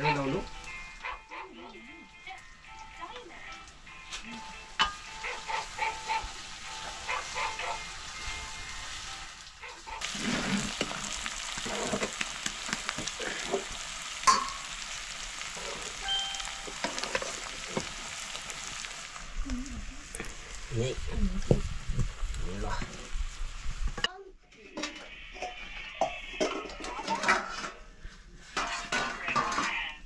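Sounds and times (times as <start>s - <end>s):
curry frying in hot oil: 0.0s - 24.1s
loud sizzle: 0.0s - 24.1s
utensil clinking on pan: 14.2s - 14.8s.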